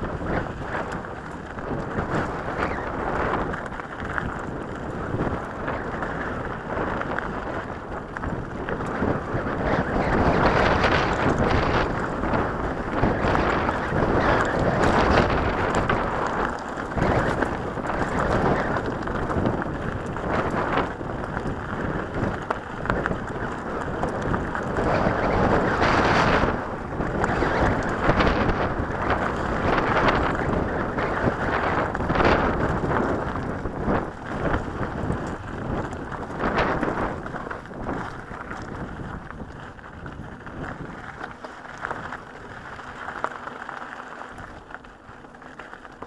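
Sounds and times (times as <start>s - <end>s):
bike jolts and rattles: 0.0s - 46.0s
tyres crunching on gravel: 0.0s - 46.0s
wind buffeting microphone: 0.0s - 46.0s.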